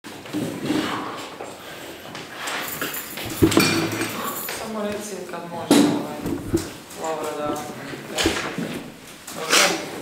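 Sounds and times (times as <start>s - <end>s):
chair being moved: 3.2s - 4.6s, 5.9s - 9.0s
rustling: 5.8s - 9.4s.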